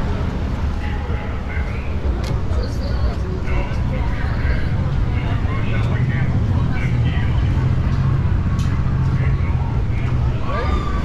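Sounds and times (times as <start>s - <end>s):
low vehicle engine hum: 0.0s - 11.0s
passersby talking: 0.0s - 11.0s.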